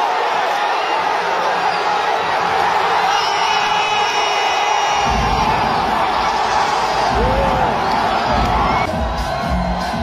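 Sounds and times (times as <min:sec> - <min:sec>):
crowd cheering and shouting: 0:00.0 - 0:10.0
thumping music beat: 0:05.0 - 0:10.0.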